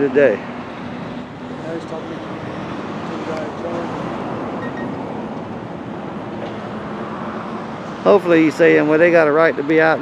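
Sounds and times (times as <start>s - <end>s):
steady road traffic: 0.0s - 10.0s.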